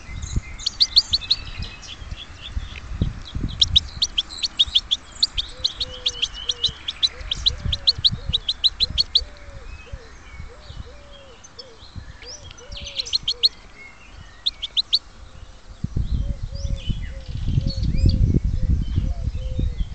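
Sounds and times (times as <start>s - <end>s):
low wind rumble: 0.0s - 19.9s
nightingale singing: 0.0s - 19.9s
low repeated cooing call: 4.2s - 13.6s.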